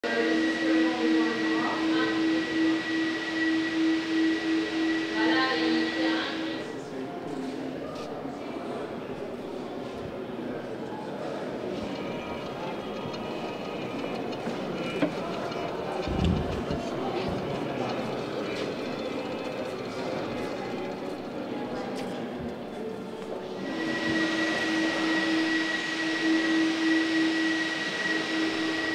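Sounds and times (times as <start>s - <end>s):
high steady whine: 0.0s - 6.8s, 23.5s - 28.9s
murmur of many voices: 0.0s - 28.9s.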